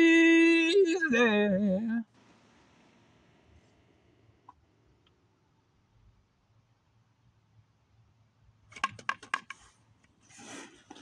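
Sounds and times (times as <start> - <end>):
brushing rustle: 10.2 - 11.0.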